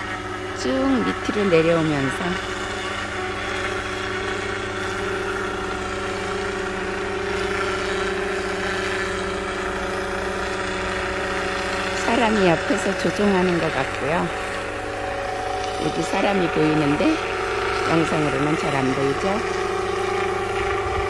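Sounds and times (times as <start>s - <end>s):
drone humming: 0.0s - 21.0s.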